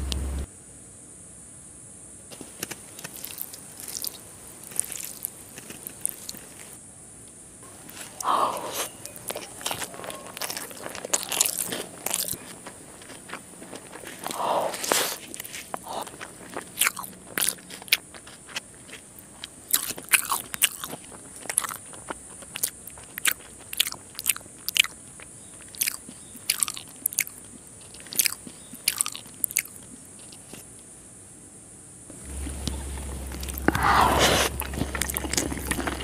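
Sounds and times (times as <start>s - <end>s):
chewing and crunching: 2.3s - 6.8s, 7.6s - 30.7s, 32.1s - 36.0s
mouth clicks and smacks: 2.3s - 6.8s, 7.8s - 30.6s, 32.1s - 36.0s.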